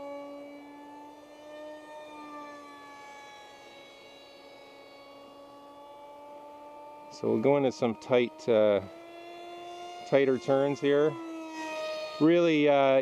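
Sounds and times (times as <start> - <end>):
model plane electric motor whine: 0.0 - 13.0.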